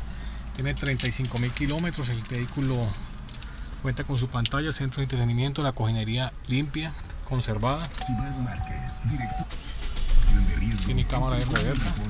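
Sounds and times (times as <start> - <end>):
steady held tone: 8.0 - 9.5
car radio voice and music: 8.0 - 12.0.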